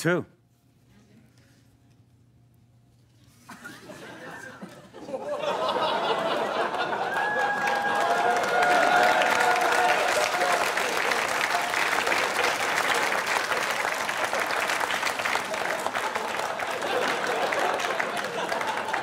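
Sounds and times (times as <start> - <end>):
audience applauding: 5.4 - 19.0.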